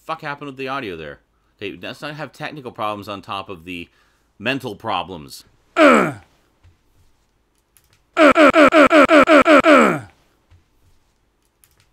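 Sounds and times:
man groaning: 5.8s - 6.2s, 8.2s - 10.1s
man stuttering: 5.8s - 6.2s, 8.2s - 10.1s.

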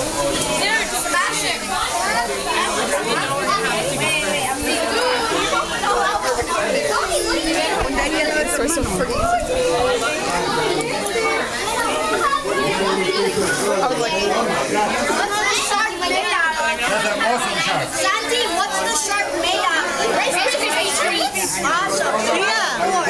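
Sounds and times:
crowd of adults and children chattering: 0.0s - 23.0s.

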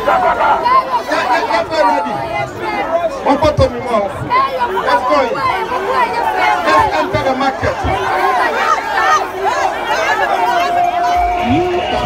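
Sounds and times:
crowd chatter: 0.0s - 12.0s
man speaking into a microphone: 3.0s - 4.3s, 6.7s - 8.0s, 11.2s - 12.0s.

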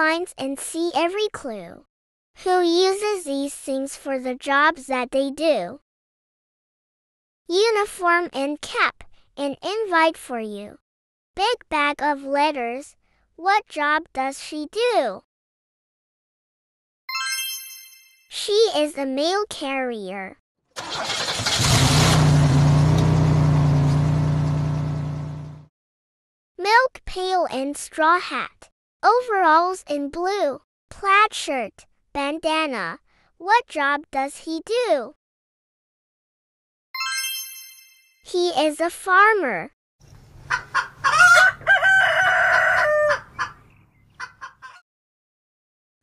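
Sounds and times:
bright bell-like chime: 17.1s - 18.3s, 37.0s - 38.2s.

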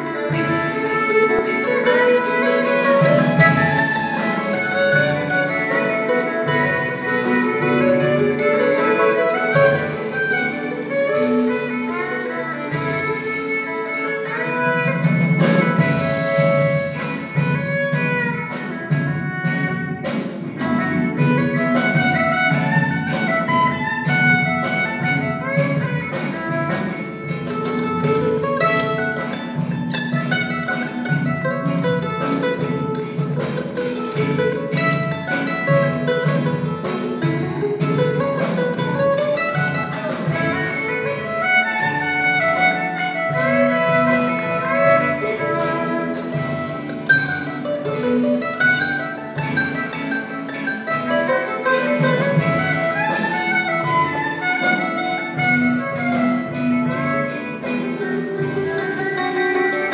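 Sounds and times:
mandolin plucked notes: 0.0s - 59.9s
orchestra accompanying: 0.0s - 59.9s
violin: 0.0s - 59.9s.

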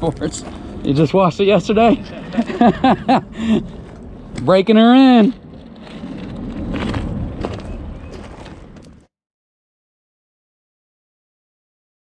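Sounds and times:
low rumble: 0.0s - 9.1s.

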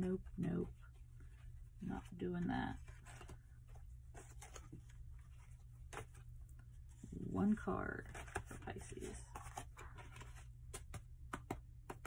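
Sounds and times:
cards being shuffled: 2.7s - 6.9s, 7.9s - 12.0s.

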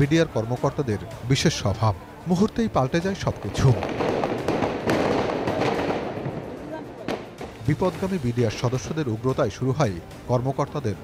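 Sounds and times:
sharp gunshot report: 3.6s - 6.5s
distant gunfire crackling: 3.6s - 8.1s.

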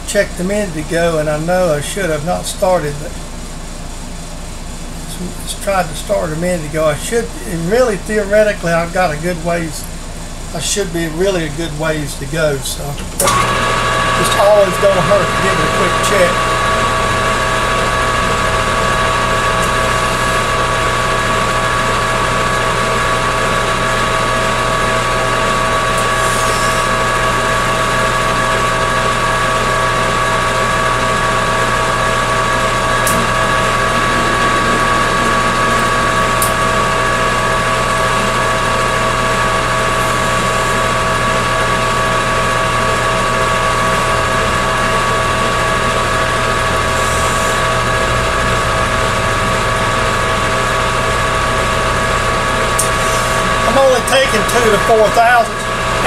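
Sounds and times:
low machine hum: 0.0s - 56.0s
metal lathe whine: 0.5s - 56.0s.

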